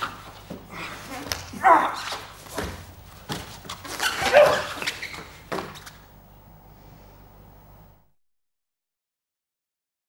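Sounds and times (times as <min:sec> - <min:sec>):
bodies slapping on foam mat: 0:00.0 - 0:04.8
person crying out straining: 0:00.7 - 0:02.2.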